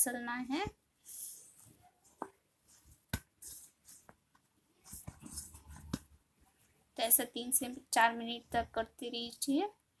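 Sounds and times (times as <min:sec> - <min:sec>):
hands kneading dough: 0:00.4 - 0:07.1.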